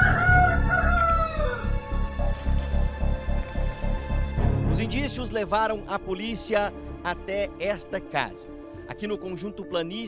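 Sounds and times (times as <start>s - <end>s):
rooster crowing: 0.0s - 2.0s
music with low pulsing beat: 0.0s - 5.8s.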